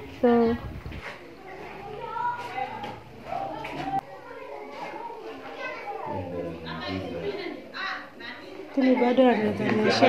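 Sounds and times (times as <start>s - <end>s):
children talking and calling: 0.0s - 10.0s.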